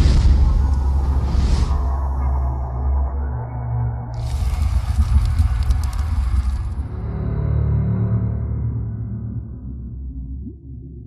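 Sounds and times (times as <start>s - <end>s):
fire-like crackling hiss: 0.0s - 1.9s, 4.2s - 6.8s
deep rumble: 0.0s - 11.0s.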